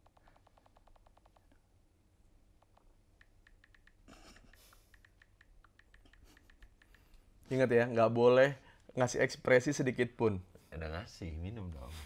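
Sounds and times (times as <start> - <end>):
phone keyboard clicks: 0.0 - 1.5, 2.6 - 7.2.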